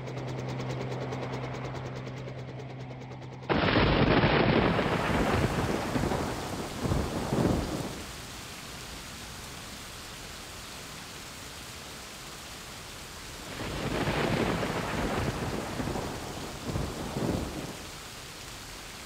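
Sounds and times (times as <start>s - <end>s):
thunder rumbling: 3.5s - 8.2s, 13.4s - 18.0s
steady rain: 3.5s - 19.0s.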